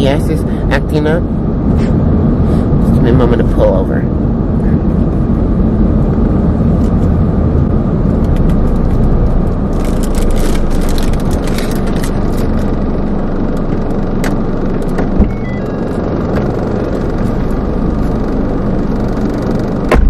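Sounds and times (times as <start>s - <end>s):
car engine rumble in cabin: 0.0s - 20.0s
road noise: 0.0s - 20.0s
clicks and rustles: 9.7s - 12.7s.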